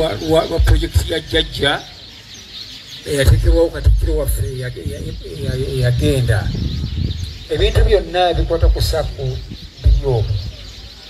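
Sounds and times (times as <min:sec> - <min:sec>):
man speaking: 0:00.0 - 0:02.0, 0:03.0 - 0:06.7, 0:07.5 - 0:10.6
small birds chirping: 0:00.0 - 0:11.0.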